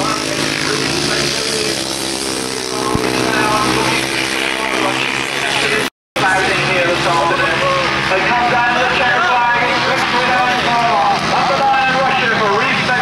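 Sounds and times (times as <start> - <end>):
motorcycle engines running: 0.0 - 13.0
indistinct voices: 2.8 - 13.0.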